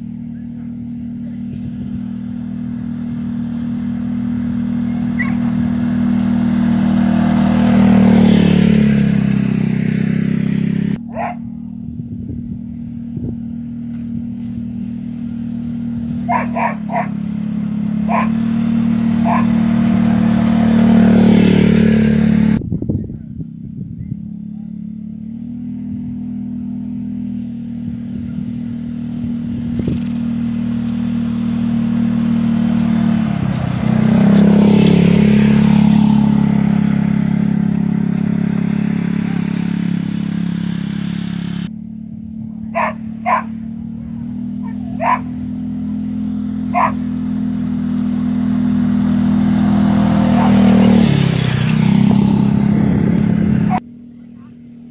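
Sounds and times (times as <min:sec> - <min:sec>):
utility vehicle engine running: 0:00.0 - 0:54.9.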